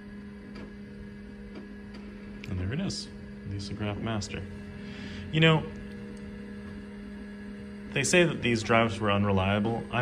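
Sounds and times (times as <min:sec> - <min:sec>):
computer electrical hum: 0:00.0 - 0:10.0.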